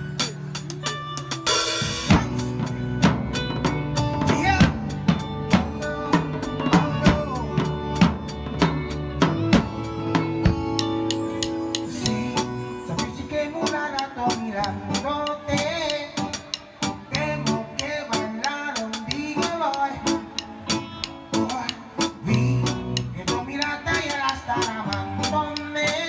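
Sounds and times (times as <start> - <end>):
drum kit playing a groove: 0.0 - 26.0
pitched backing instruments: 0.0 - 26.0.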